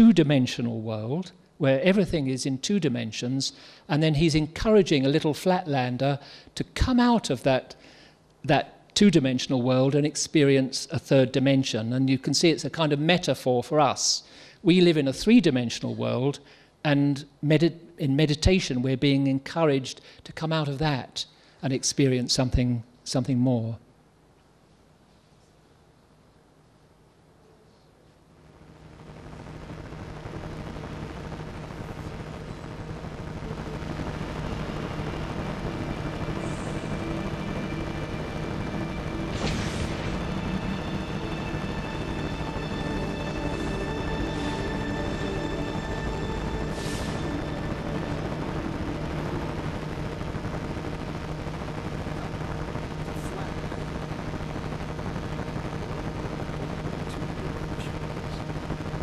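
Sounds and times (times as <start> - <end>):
steady low hum: 23.8 - 59.0
rushing noise: 29.0 - 53.1
ominous musical drone: 33.4 - 51.0
brief hiss: 39.2 - 41.9, 46.6 - 47.6.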